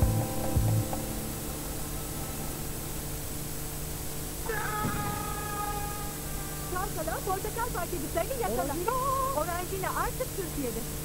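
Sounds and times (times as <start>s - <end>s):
tape hiss and hum: 0.0s - 11.0s
long meow-like cry: 4.4s - 6.8s.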